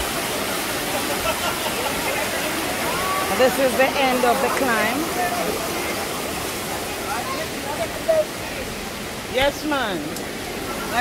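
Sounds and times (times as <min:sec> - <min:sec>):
faint voices of people: 0:00.0 - 0:11.0
water cascading down waterfall: 0:00.0 - 0:11.0.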